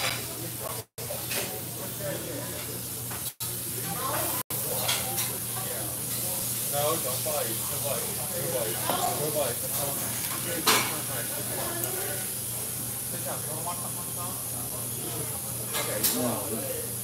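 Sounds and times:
faint background voices: 0.0s - 17.0s.

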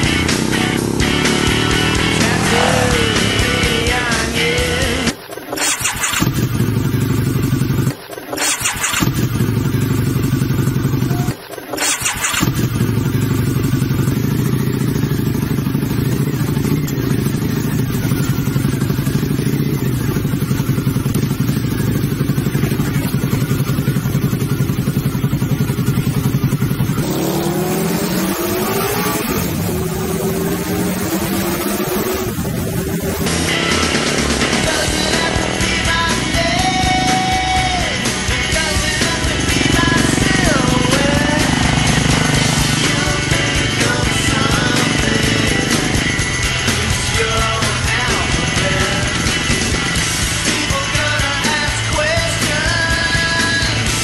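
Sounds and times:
rising and falling pitched sounds: 0.0s - 4.1s, 25.9s - 35.6s
motorcycle engine running: 0.0s - 54.0s.

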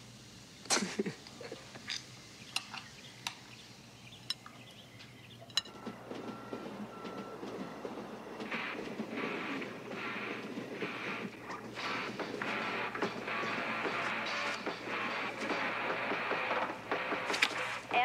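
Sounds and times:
steady background noise: 0.0s - 18.0s
cutlery clinking on plates: 5.5s - 5.9s.

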